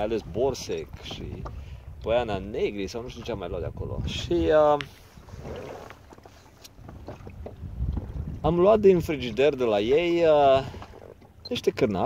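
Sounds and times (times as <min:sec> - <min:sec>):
waves lapping against boat: 0:00.0 - 0:12.0
wind buffeting microphone: 0:00.0 - 0:12.0.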